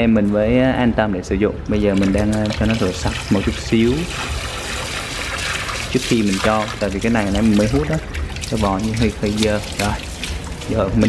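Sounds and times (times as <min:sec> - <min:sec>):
hose water splashing into bucket: 0:01.8 - 0:11.0.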